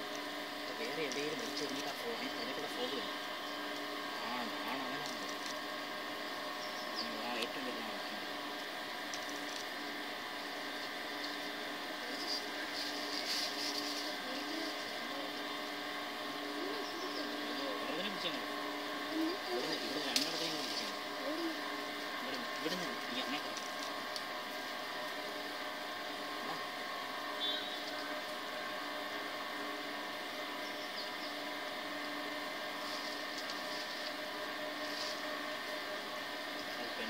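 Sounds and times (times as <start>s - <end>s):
steady hum: 0.0s - 37.0s
indistinct voices murmuring: 11.0s - 27.0s.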